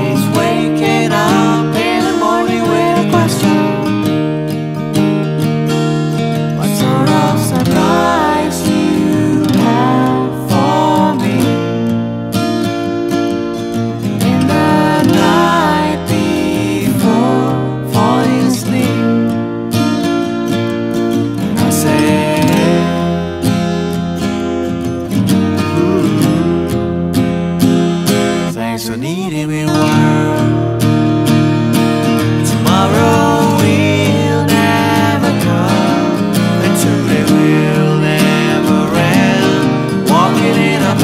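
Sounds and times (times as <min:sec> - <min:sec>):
person singing: 0:00.0 - 0:04.0, 0:06.5 - 0:11.9, 0:14.2 - 0:19.3, 0:21.4 - 0:23.3, 0:25.4 - 0:26.7, 0:28.5 - 0:30.7, 0:32.3 - 0:41.0
strummed acoustic guitar: 0:00.0 - 0:41.0.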